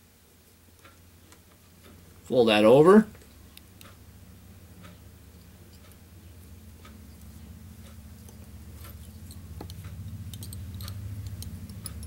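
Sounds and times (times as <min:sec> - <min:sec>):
low steady hum: 0:00.0 - 0:12.0
small clicks of hands working thread: 0:00.7 - 0:02.0, 0:03.2 - 0:04.0.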